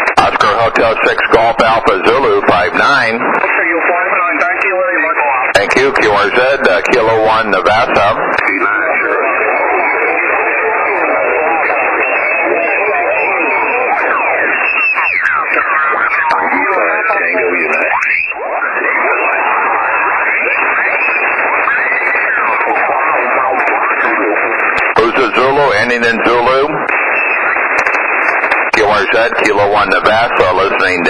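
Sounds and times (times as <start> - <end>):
many radio voices overlapping: 0.0 - 31.0.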